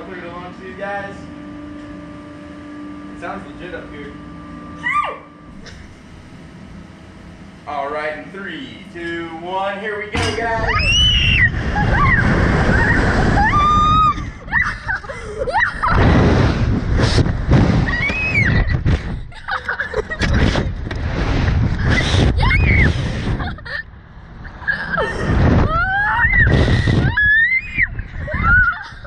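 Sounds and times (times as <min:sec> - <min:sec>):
heavy wind buffeting microphone: 0:10.4 - 0:19.4, 0:20.1 - 0:29.0
riders screaming: 0:10.7 - 0:15.9.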